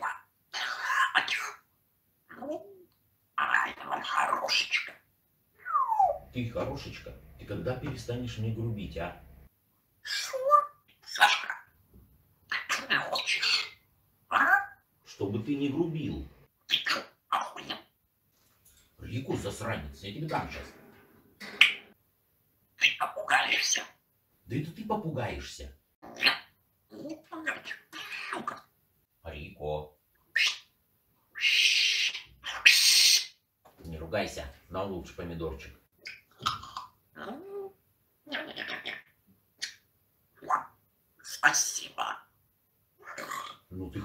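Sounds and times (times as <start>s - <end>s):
parrot squawking: 0.0s - 1.7s, 2.3s - 2.8s, 3.4s - 7.8s, 10.0s - 11.7s, 12.5s - 14.9s, 16.0s - 18.0s, 19.6s - 22.0s, 22.8s - 24.0s, 26.0s - 28.7s, 30.3s - 33.4s, 36.0s - 42.3s, 43.0s - 43.7s
parrot hissing voice-like bursts: 31.3s - 33.3s.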